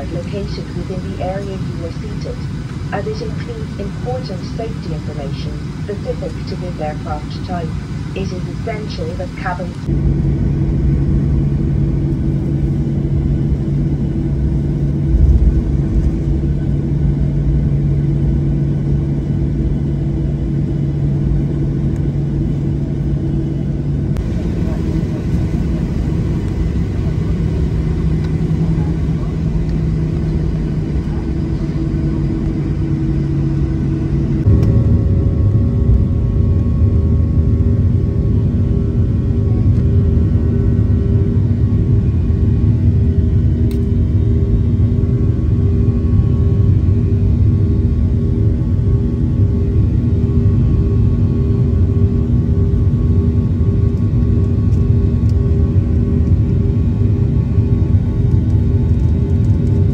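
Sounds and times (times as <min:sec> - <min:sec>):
jet engines rumbling in cabin: 0:00.0 - 0:59.9.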